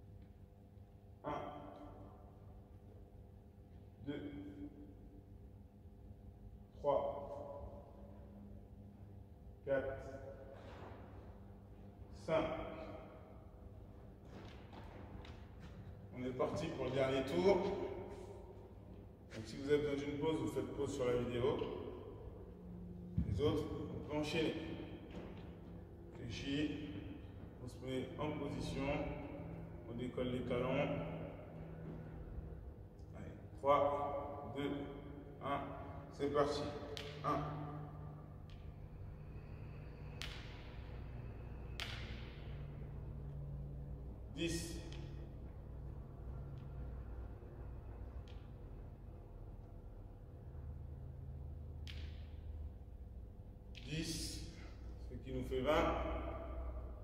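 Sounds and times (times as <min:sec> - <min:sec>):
low room hum: 0:00.0 - 0:57.0
sharp clicks echoing in a hall: 0:00.0 - 0:57.0.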